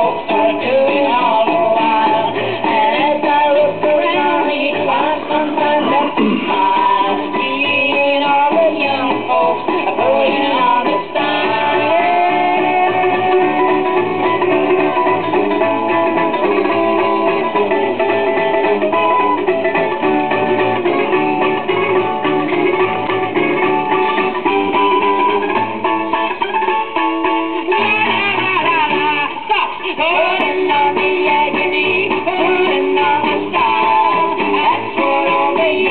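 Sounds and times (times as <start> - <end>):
instrumental music from a record: 0.0 - 35.9.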